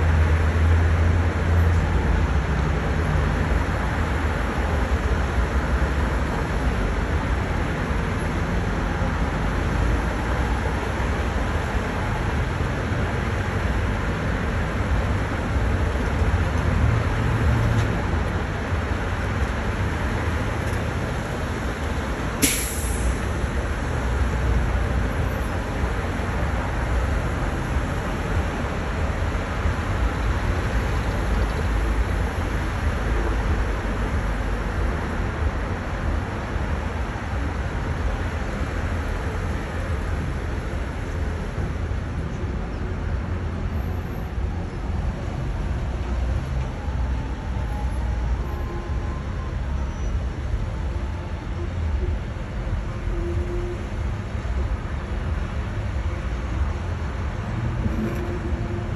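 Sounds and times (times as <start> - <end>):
traffic rumble: 0.0 - 58.9
sharp hiss: 22.4 - 23.3.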